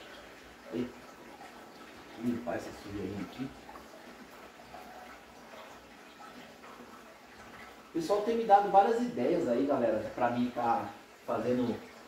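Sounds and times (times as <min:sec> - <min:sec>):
aquarium pump water noise: 0:00.0 - 0:12.0.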